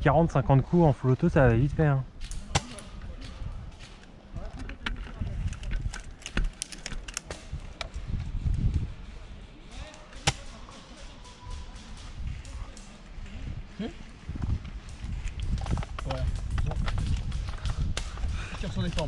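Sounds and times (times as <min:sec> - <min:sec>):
airsoft guns firing: 0:09.7 - 0:12.9.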